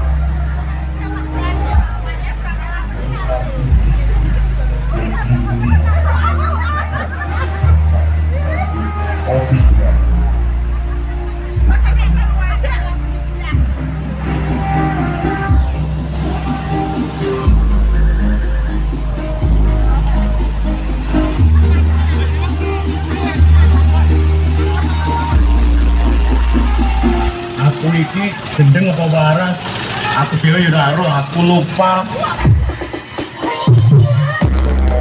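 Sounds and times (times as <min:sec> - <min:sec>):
bass-heavy music from loudspeakers: 0:00.0 - 0:35.0
crowd voices: 0:00.0 - 0:35.0.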